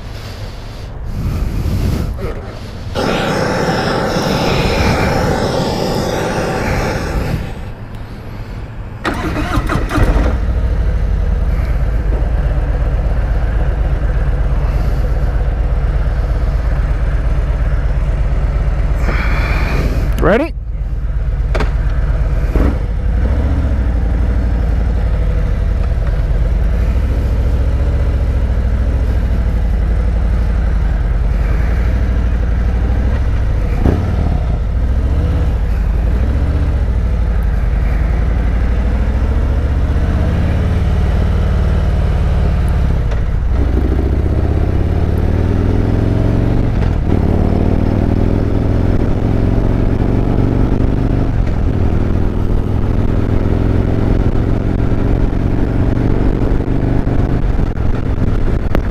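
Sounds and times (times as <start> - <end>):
motorcycle engine accelerating: 2.9 - 8.2, 9.0 - 19.2, 21.1 - 58.9.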